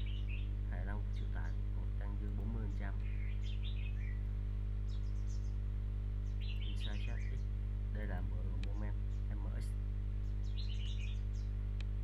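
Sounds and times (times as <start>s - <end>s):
birds chirping faintly: 0.0s - 12.0s
steady low hum: 0.0s - 12.0s.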